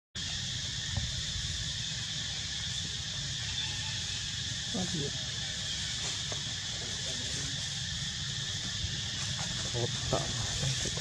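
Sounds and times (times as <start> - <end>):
high-pitched insect chorus: 0.2 - 11.0.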